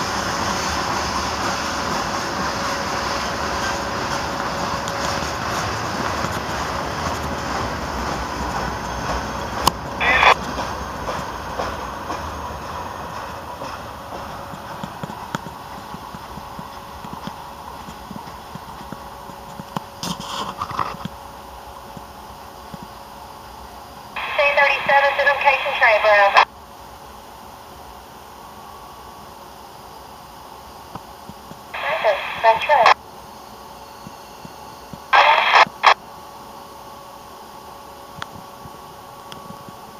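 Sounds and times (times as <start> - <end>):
low rumble of freight cars: 0.0 - 39.9
train wheels clicking over rail joints: 4.1 - 21.2
radio squelch burst: 10.0 - 10.4, 24.2 - 26.4, 31.8 - 33.0, 35.1 - 36.0
radio voice: 10.0 - 10.4, 24.2 - 26.5, 31.8 - 33.0, 35.2 - 36.0.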